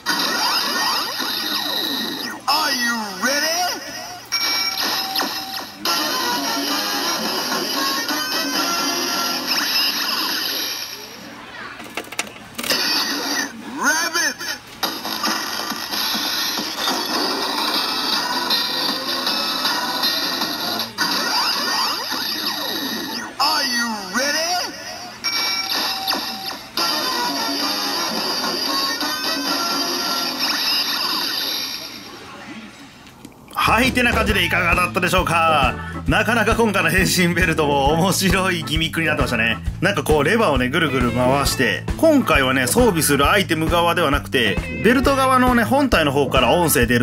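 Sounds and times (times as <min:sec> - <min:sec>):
toy electronic music and effects: 0:00.0 - 0:02.4, 0:03.4 - 0:11.2, 0:12.6 - 0:13.5, 0:14.4 - 0:23.6, 0:24.4 - 0:32.1.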